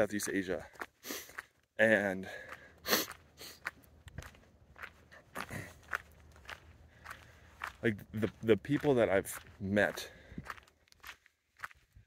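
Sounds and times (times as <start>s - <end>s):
footsteps walking: 0.3s - 12.0s
person speaking: 7.7s - 10.2s.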